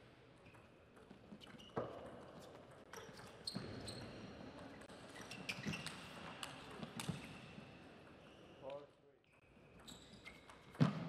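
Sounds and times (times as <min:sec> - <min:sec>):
shoe squeaks on court floor: 0:00.4 - 0:08.8, 0:09.4 - 0:11.0.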